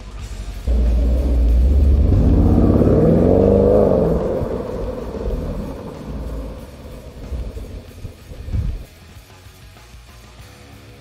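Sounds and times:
deep rumble: 0:00.5 - 0:08.9
vehicle engine revving: 0:00.6 - 0:08.9.

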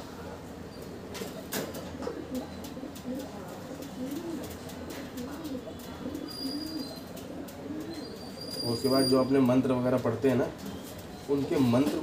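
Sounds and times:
pigeon cooing: 0:01.4 - 0:09.2.

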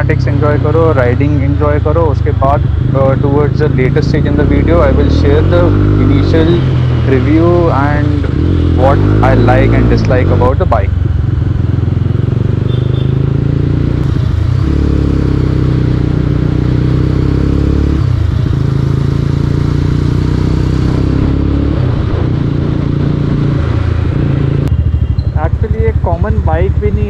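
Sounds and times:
motorcycle engine and exhaust: 0:00.0 - 0:27.0.

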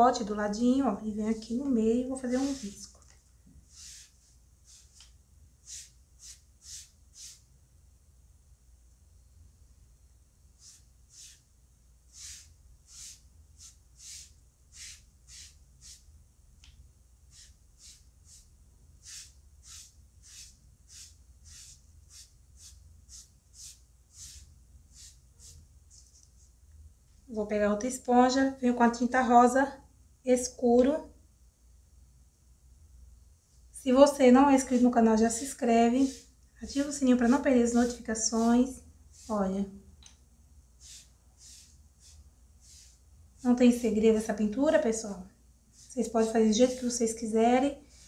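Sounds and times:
sponge swishing on foam: 0:02.0 - 0:03.0, 0:03.6 - 0:07.4, 0:10.6 - 0:11.4, 0:12.1 - 0:16.0, 0:17.3 - 0:25.6, 0:34.5 - 0:39.6, 0:40.8 - 0:43.8, 0:45.7 - 0:47.1.

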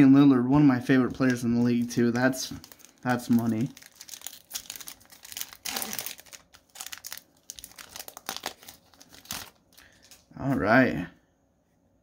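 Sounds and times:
plastic packaging crinkling: 0:01.1 - 0:10.3.

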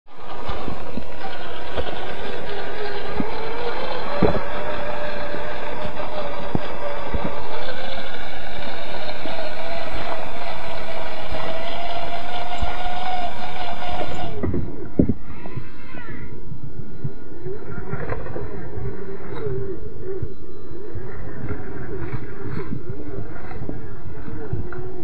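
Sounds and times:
electric motor and gears whining: 0:00.1 - 0:16.0.

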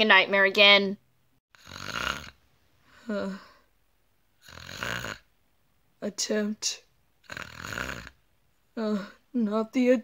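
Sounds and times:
person imitating a snore: 0:01.5 - 0:02.4, 0:04.4 - 0:05.3, 0:07.2 - 0:08.2.

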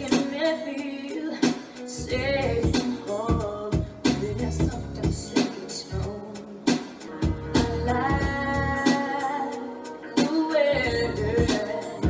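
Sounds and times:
drum beat and bass: 0:00.0 - 0:12.0
woman singing pop song: 0:00.0 - 0:12.0.

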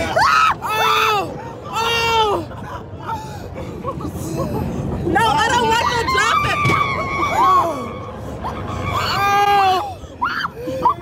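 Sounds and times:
riders screaming and shrieking: 0:05.6 - 0:11.0.

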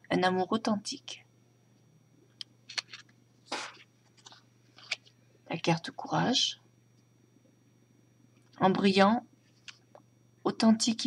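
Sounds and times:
cards rustling: 0:02.7 - 0:05.1.

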